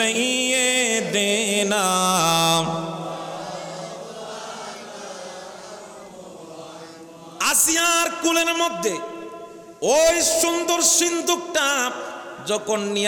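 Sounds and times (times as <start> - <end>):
man chanting through loudspeakers: 0.0 - 3.6, 7.2 - 13.0.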